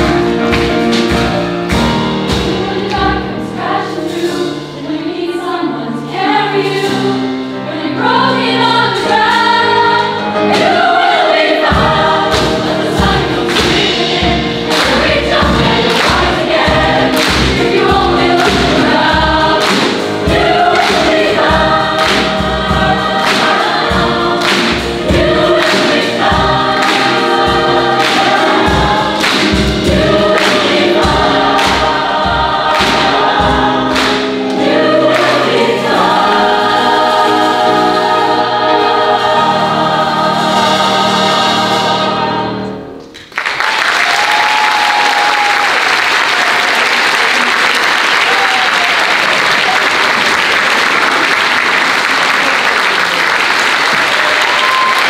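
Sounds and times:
choir singing gospel song: 0:00.0 - 0:43.0, 0:48.3 - 0:55.0
steady beat of sharp hits: 0:10.4 - 0:42.6
audience applause: 0:43.2 - 0:55.0.

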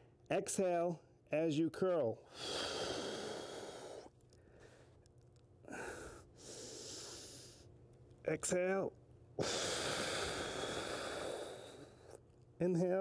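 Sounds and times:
man breathing heavily: 0:02.3 - 0:05.0, 0:05.6 - 0:07.7, 0:09.4 - 0:12.2.

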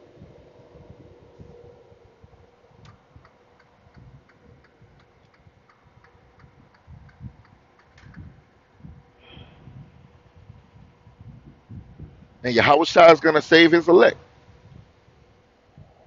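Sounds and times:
soft low rumble: 0:00.0 - 0:12.4
faint regular ticking: 0:02.8 - 0:08.3.

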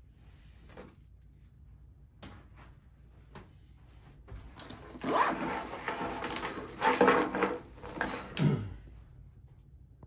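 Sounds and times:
bag scraping across wooden table: 0:04.7 - 0:08.4.

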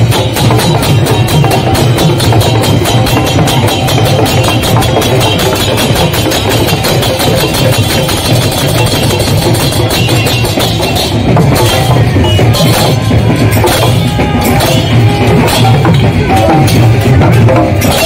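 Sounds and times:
brass hand cymbals: 0:00.0 - 0:18.0
hand drums playing: 0:00.0 - 0:18.0.

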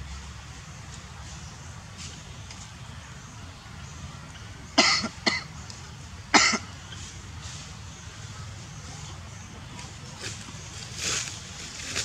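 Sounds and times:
low outdoor background hum: 0:00.0 - 0:12.0.

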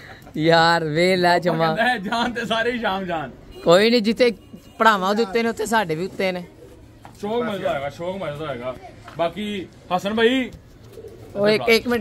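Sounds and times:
man speaking: 0:00.4 - 0:06.5, 0:11.4 - 0:12.0
pigeons cooing: 0:05.9 - 0:07.9, 0:10.5 - 0:12.0.

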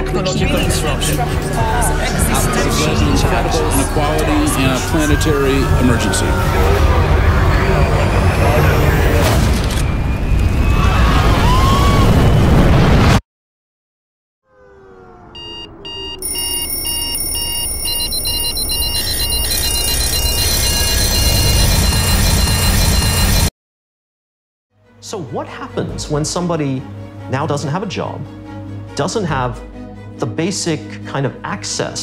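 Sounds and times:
low rising swell: 0:00.4 - 0:11.3
loud dense noise: 0:00.8 - 0:09.5
digital alarm clock beeping: 0:15.4 - 0:23.5.

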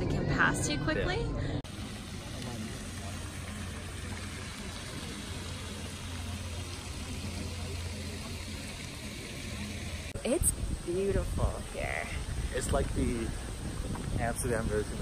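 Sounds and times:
murmur of distant voices: 0:00.0 - 0:15.0.

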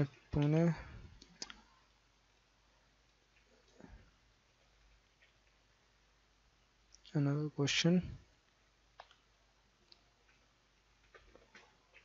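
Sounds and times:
computer mouse clicks: 0:01.2 - 0:01.7, 0:09.0 - 0:12.0.

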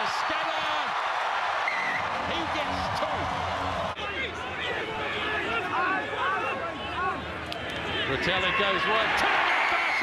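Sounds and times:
crowd shouting and cheering: 0:00.0 - 0:10.0
steady crowd roar: 0:00.0 - 0:10.0.

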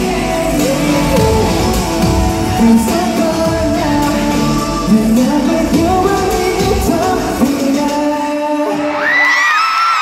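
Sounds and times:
backing track music: 0:00.0 - 0:09.1
man singing pop song: 0:00.0 - 0:09.6
crowd screaming: 0:02.1 - 0:03.8, 0:08.7 - 0:10.0.

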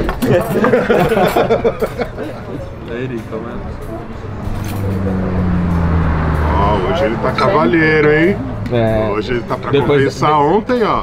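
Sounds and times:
vehicle engine droning: 0:02.6 - 0:10.7.

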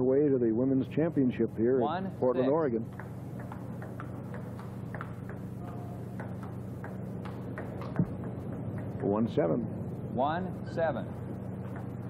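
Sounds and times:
steady low hum: 0:00.0 - 0:12.0
table tennis ball ticking: 0:02.9 - 0:09.2.

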